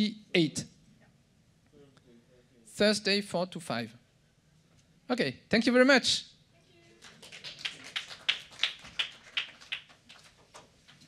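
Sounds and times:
scattered applause: 0:06.9 - 0:11.0.

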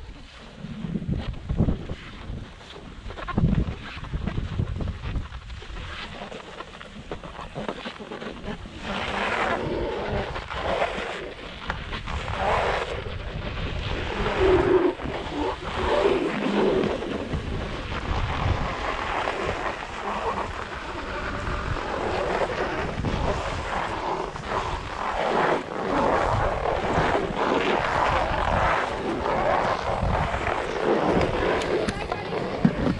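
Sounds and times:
wind rushing over microphone: 0:00.0 - 0:06.3, 0:08.3 - 0:32.9
ski edges scraping on snow: 0:00.1 - 0:32.9.

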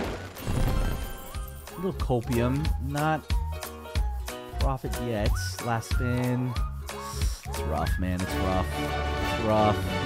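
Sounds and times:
game background music: 0:00.0 - 0:10.0.

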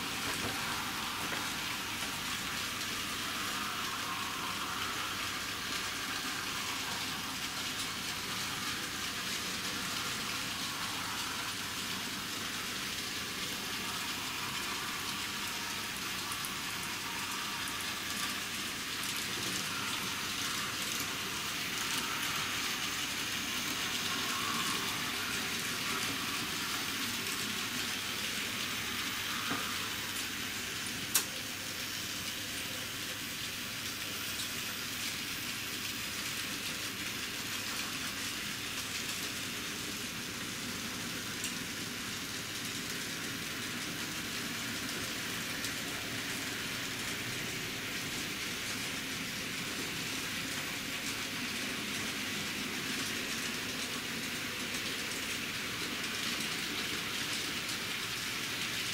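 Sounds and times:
model train wheels on rails: 0:00.0 - 0:58.9.

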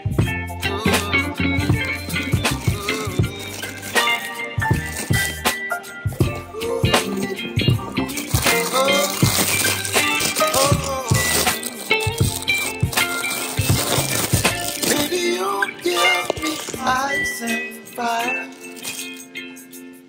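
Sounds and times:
song with singing over a beat: 0:00.0 - 0:04.8, 0:06.1 - 0:11.8, 0:14.9 - 0:18.7.

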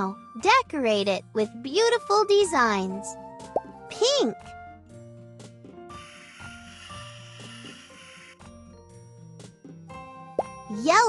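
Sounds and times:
light children's background music: 0:00.0 - 0:11.0.

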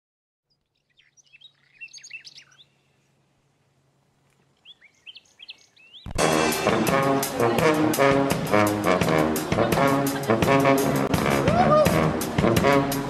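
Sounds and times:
small birds chirping: 0:00.4 - 0:06.2.

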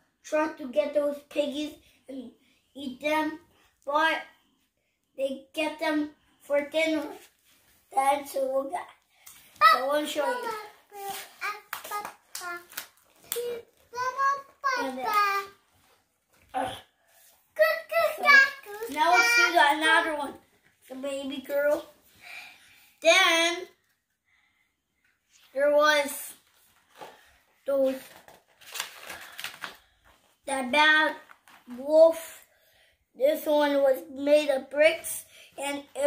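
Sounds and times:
paper pages turning: 0:10.1 - 0:16.4, 0:18.3 - 0:19.6, 0:26.4 - 0:30.2, 0:31.2 - 0:31.8
child clapping hands: 0:11.4 - 0:13.6.

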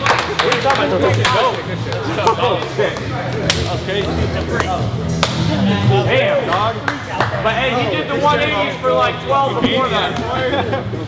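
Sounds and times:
men cheering and talking: 0:00.0 - 0:11.0
hand slaps: 0:03.4 - 0:03.7, 0:04.6 - 0:05.5.

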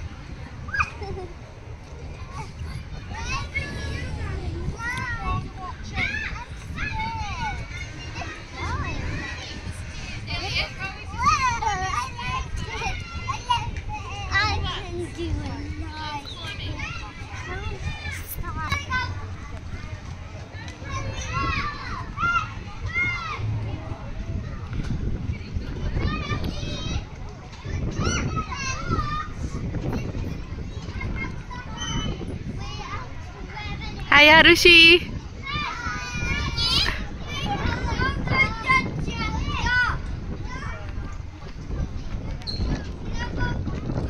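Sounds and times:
children calling and chattering: 0:00.0 - 0:44.0.

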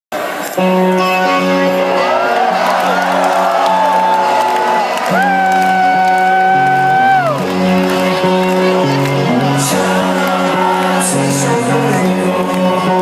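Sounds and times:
live rock band: 0:00.5 - 0:13.0
fans whooping and cheering: 0:01.3 - 0:13.0.

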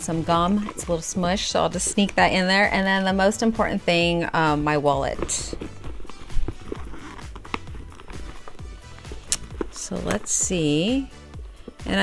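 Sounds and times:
background music: 0:00.0 - 0:12.0
wallet knocks and rustles: 0:00.0 - 0:12.0.

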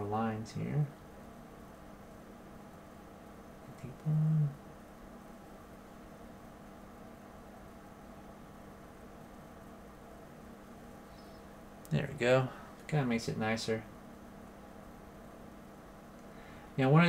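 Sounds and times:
faint background hum: 0:00.0 - 0:17.0
man humming: 0:03.7 - 0:04.6.

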